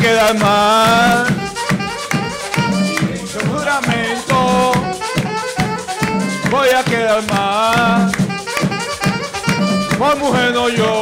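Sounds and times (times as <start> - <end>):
drums keeping a beat: 0.0 - 11.0
saxophone playing: 0.0 - 11.0.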